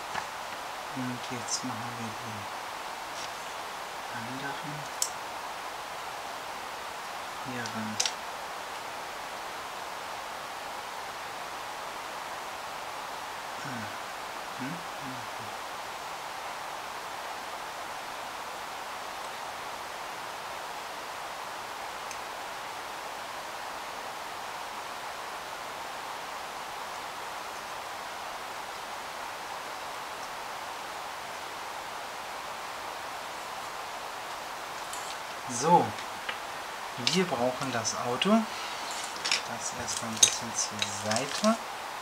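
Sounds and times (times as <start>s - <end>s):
steady background hiss: 0.0s - 42.0s.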